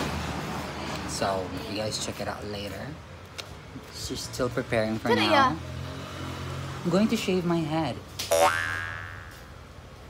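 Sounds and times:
comedy boing sound effect: 8.3s - 9.5s.

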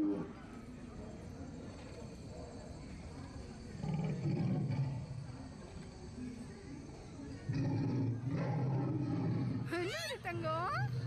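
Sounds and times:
crowd background noise: 0.0s - 11.0s
low growling dinosaur roar: 3.8s - 5.2s, 7.5s - 9.7s.

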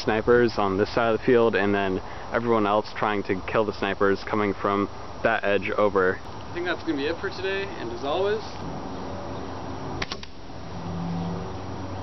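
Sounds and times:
sharp clicks: 10.0s - 10.4s.

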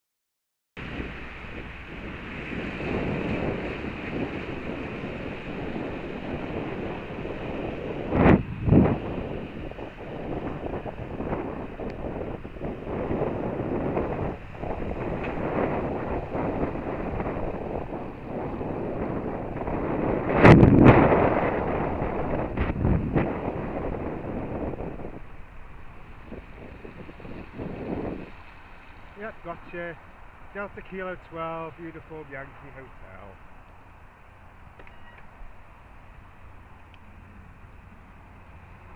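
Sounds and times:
wind rushing over microphone: 0.8s - 38.9s.

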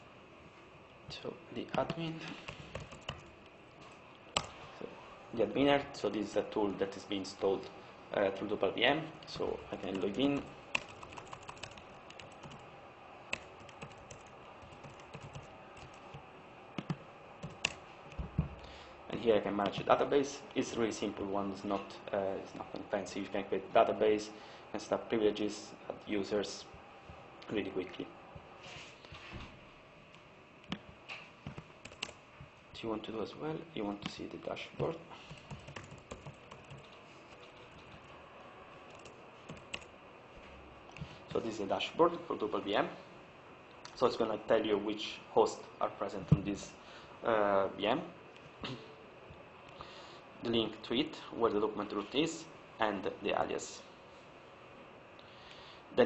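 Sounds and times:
room hiss: 0.0s - 56.0s
keyboard typing: 1.7s - 3.3s, 9.4s - 12.7s, 13.3s - 16.2s, 16.8s - 18.3s, 31.4s - 32.2s, 34.8s - 38.2s, 38.9s - 39.9s.

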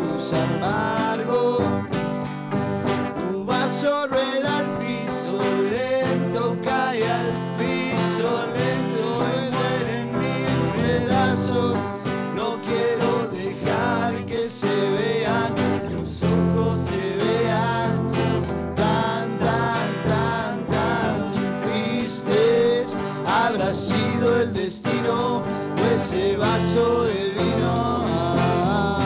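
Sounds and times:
acoustic guitars strumming: 0.0s - 29.0s
bending lead melody: 6.5s - 13.0s.

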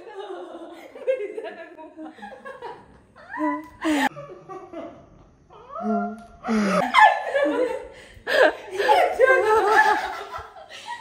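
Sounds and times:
women laughing hard: 6.5s - 11.0s.

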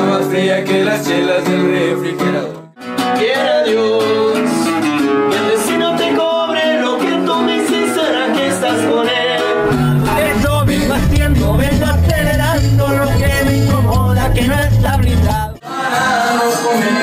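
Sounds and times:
acoustic guitar: 0.0s - 17.0s
man singing: 0.0s - 17.0s
singing over heavy bass backing: 5.8s - 17.0s.

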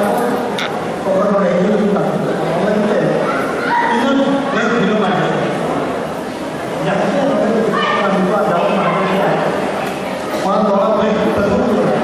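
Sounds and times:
man speaking over public address: 0.0s - 5.7s, 6.8s - 9.7s, 10.4s - 12.0s.

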